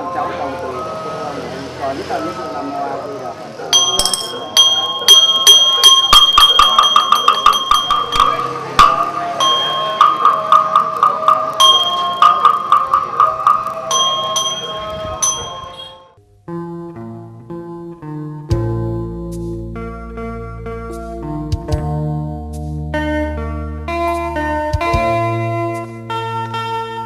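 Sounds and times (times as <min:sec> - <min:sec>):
soft music: 0:00.0 - 0:27.0
brass bowl bell ringing: 0:03.7 - 0:16.2.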